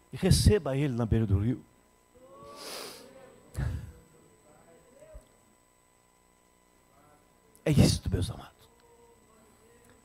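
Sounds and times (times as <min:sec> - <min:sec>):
faint electrical whine: 0:00.0 - 0:10.0.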